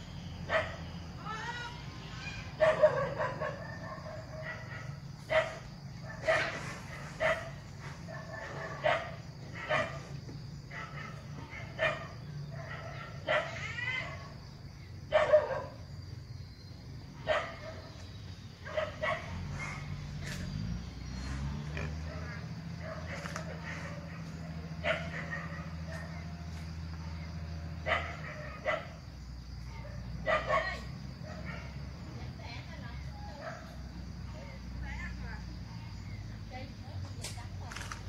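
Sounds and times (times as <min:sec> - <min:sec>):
dog barking: 0:00.5 - 0:00.8, 0:02.6 - 0:10.1, 0:10.7 - 0:14.3, 0:15.1 - 0:15.8, 0:17.2 - 0:18.0, 0:18.6 - 0:20.0, 0:22.0 - 0:26.5, 0:27.8 - 0:29.1, 0:29.8 - 0:31.8, 0:33.4 - 0:33.8.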